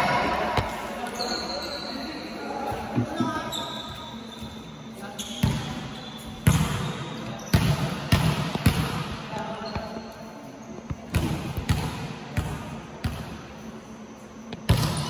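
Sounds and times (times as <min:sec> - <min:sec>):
volleyball bouncing on gym floor: 0:05.4 - 0:10.0, 0:10.8 - 0:13.5, 0:14.5 - 0:15.0.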